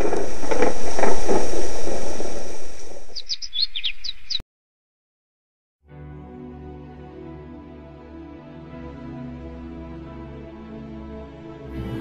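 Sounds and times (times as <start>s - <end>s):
high bird chirps: 3.0s - 4.4s.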